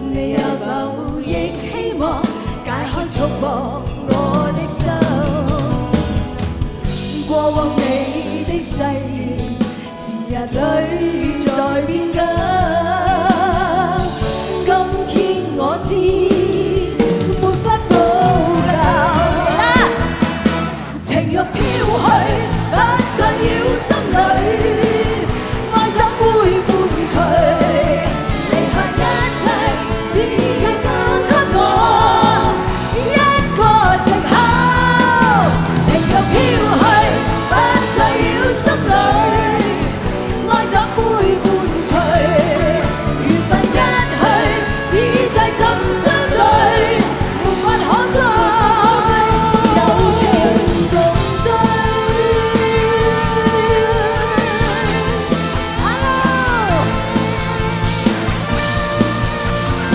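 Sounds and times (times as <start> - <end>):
women singing pop ballad duet: 0.0 - 20.3, 21.0 - 58.6
backing band: 0.0 - 59.9
steady drum beat: 10.5 - 59.9.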